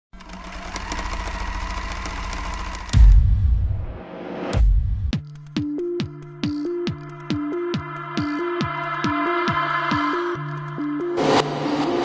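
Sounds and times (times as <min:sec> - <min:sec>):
mechanical rattling and clicking: 0:00.1 - 0:03.2.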